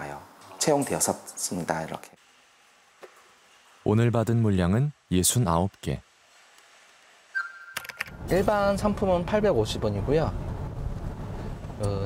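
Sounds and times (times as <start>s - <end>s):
sharp clicks: 7.7s - 8.2s.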